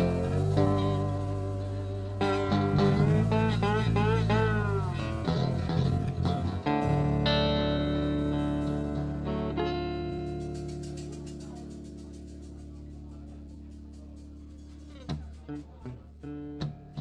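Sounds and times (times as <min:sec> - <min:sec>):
live blues band: 0:00.0 - 0:12.8
electric bass: 0:00.0 - 0:17.0
electric guitar bending notes: 0:00.0 - 0:17.0
guitar chord ringing: 0:00.0 - 0:17.0.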